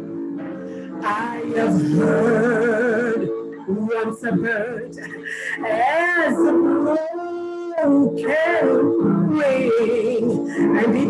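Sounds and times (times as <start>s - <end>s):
woman singing: 1.0s - 11.0s.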